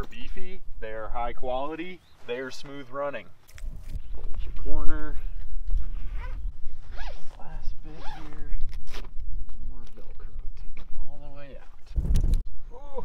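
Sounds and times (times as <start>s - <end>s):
zipper rasping: 5.8s - 9.1s.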